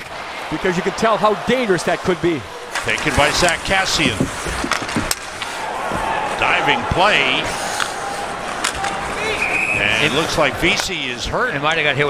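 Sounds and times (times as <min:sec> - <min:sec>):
crowd and rink noise: 0:00.0 - 0:12.0
skate blades scraping ice: 0:02.8 - 0:10.5.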